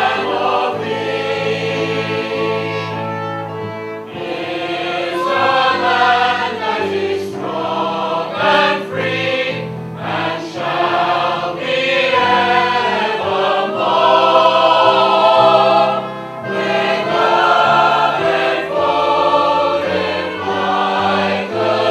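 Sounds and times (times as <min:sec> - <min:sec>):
choir singing sustained chords: 0:00.0 - 0:21.9
low accompanying notes: 0:00.0 - 0:21.9.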